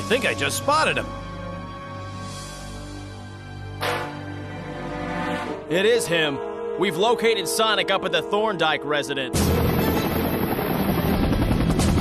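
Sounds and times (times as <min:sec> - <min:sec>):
helicopter rotors chopping: 0:09.4 - 0:12.0.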